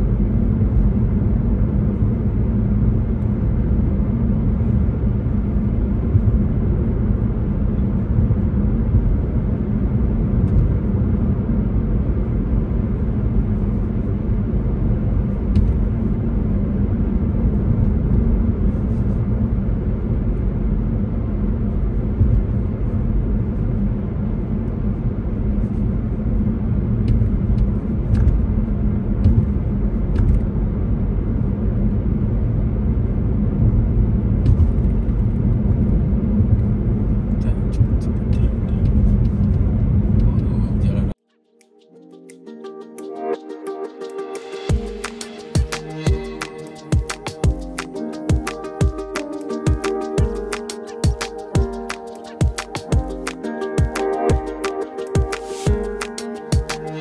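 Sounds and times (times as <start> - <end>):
car interior road rumble: 0.0 - 41.2.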